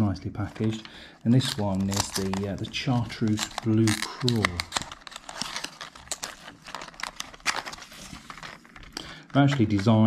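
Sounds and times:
plastic packaging crackling: 0.3s - 10.0s.

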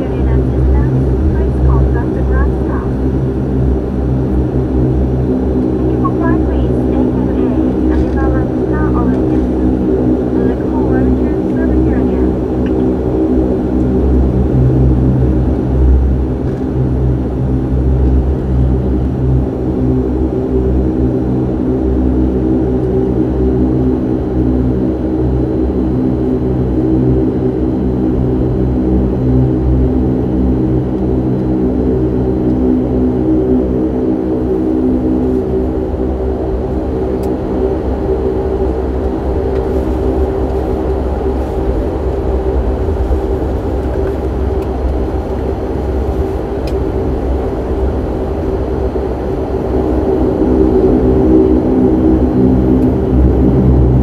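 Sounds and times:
low rumble: 0.0s - 54.0s
turboprop engines droning: 0.0s - 54.0s.

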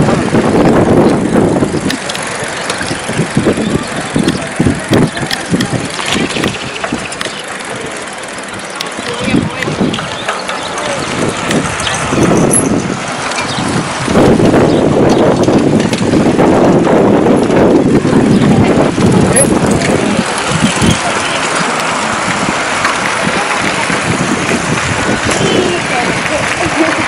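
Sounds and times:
cyclists talking and calling out: 0.0s - 27.0s.

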